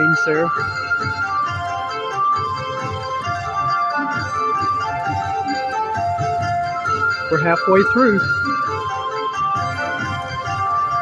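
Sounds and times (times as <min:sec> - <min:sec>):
electronic slot machine melody: 0:00.0 - 0:11.0.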